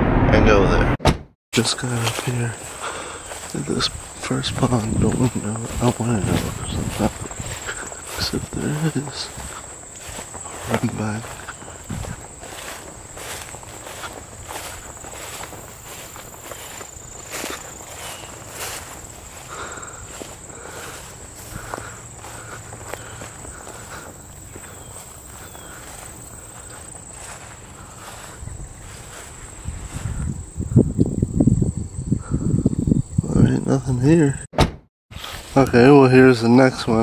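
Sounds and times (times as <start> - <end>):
footsteps through rustling grass: 1.7 - 30.4, 35.1 - 36.1
low rumbling on microphone: 3.6 - 24.0.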